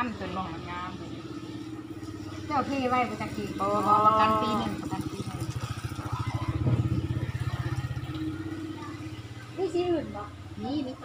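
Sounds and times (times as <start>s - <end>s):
faint voices: 0.0s - 11.0s
small engine running: 0.0s - 11.0s.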